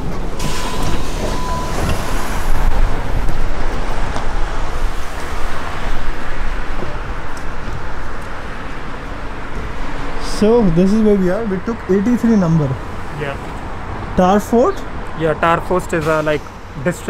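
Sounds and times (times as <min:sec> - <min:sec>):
bus engine running: 0:00.0 - 0:17.0
steady beep: 0:00.6 - 0:02.5.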